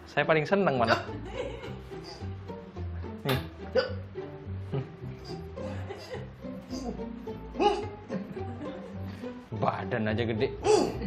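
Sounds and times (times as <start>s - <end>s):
plucked-string background music: 0.0s - 11.0s.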